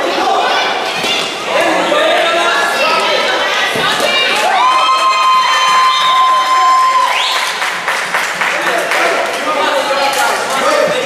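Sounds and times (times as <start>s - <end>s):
crowd cheering and shouting: 0.0s - 7.9s.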